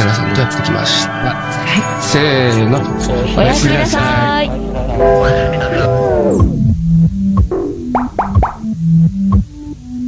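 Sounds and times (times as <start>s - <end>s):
synth bass line: 4.9s - 8.8s
rising synth blips: 7.4s - 8.8s.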